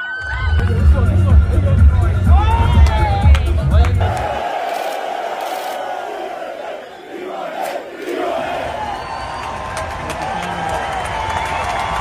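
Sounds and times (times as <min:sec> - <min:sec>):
group shouting and cheering: 0:02.3 - 0:12.0.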